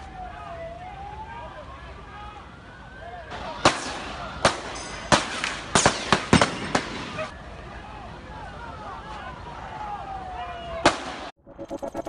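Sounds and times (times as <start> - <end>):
gunshots: 3.3 - 7.3.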